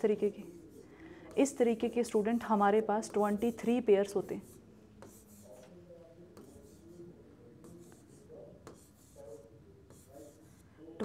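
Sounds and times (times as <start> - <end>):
stylus scratching on touchscreen: 0.0 - 11.0.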